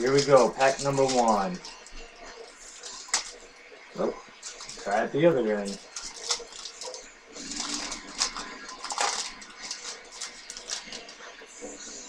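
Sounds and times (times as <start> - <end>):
card pack wrapper crinkling: 0.0 - 2.0, 2.6 - 3.4, 4.4 - 5.0, 5.6 - 11.2.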